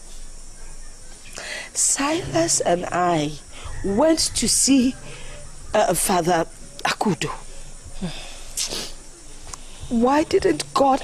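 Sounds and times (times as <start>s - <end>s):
person breathing: 1.3s - 1.8s, 3.5s - 3.8s, 5.0s - 5.6s, 7.5s - 10.0s
person speaking: 9.9s - 11.0s.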